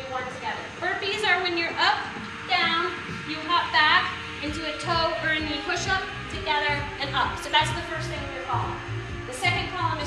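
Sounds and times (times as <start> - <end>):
woman's voice: 0.0 - 10.0.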